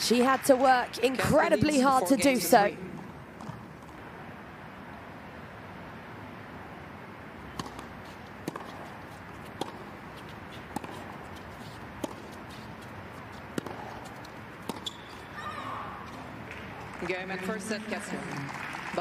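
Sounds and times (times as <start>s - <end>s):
crowd ambience: 0.0s - 4.4s, 7.6s - 19.0s
racket hitting tennis ball: 7.5s - 16.9s
tennis ball bouncing on hard court: 7.5s - 17.0s.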